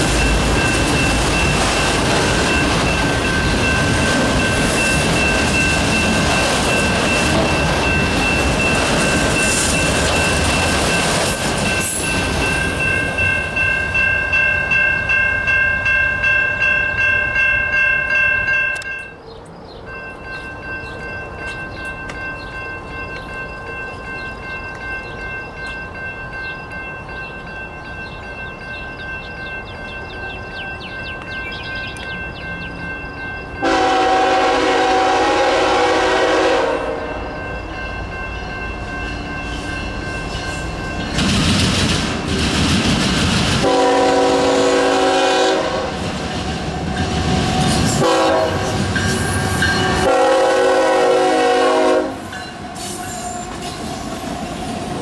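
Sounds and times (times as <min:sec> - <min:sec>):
train rumble: 0:00.0 - 0:55.0
locomotive air horn: 0:33.6 - 0:37.2, 0:43.6 - 0:46.0, 0:48.0 - 0:52.3.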